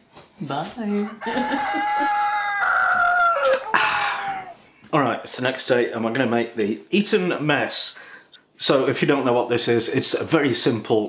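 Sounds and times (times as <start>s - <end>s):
rooster crowing: 1.1s - 4.6s.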